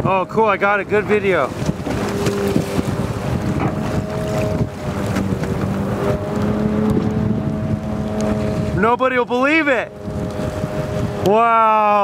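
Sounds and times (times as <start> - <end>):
boat engine droning: 0.0 - 12.0
choppy sea wash: 0.0 - 12.0
wind buffeting microphone: 0.0 - 12.0.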